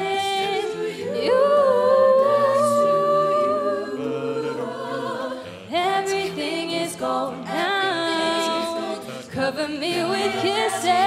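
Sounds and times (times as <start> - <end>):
backing vocal harmonies: 0.0 - 11.0.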